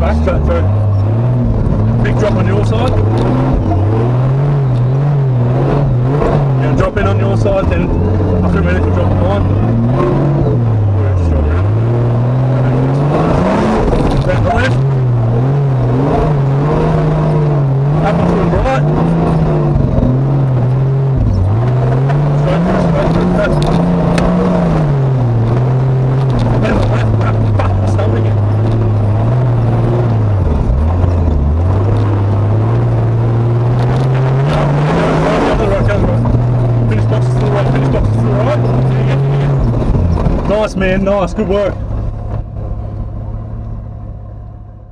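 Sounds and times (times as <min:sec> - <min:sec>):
car engine revving: 0:00.0 - 0:44.9.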